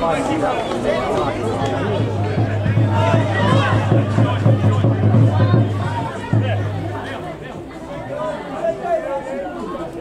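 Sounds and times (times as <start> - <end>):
voices calling and chattering: 0.0 - 10.0.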